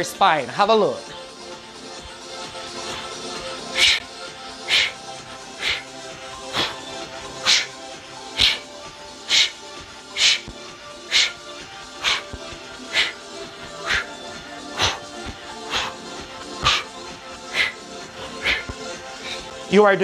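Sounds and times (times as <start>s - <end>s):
background music: 0.0s - 20.0s
sharp breathy exhale: 3.7s - 5.0s, 5.6s - 5.9s, 6.5s - 6.8s, 7.4s - 8.7s, 9.3s - 10.5s, 11.1s - 11.4s, 12.0s - 16.0s, 16.6s - 16.9s, 17.5s - 19.5s.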